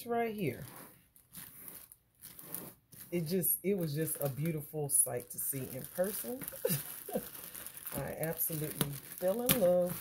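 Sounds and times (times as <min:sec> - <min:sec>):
plastic bag crinkling: 0:00.4 - 0:10.0.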